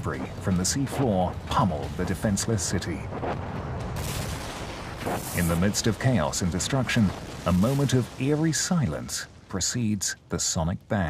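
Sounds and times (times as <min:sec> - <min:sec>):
debris raining down crackling rumble: 0:00.0 - 0:11.0
bright hiss: 0:05.0 - 0:06.0.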